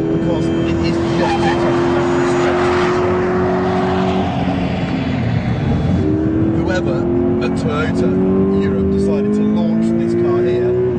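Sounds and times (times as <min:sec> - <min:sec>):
car engine at high revs: 0:00.0 - 0:10.9.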